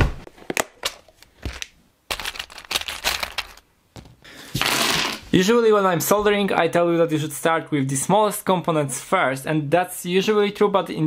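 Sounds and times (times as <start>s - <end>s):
objects knocking and clicking: 0.4s - 5.2s
rustling and clattering: 1.4s - 5.3s.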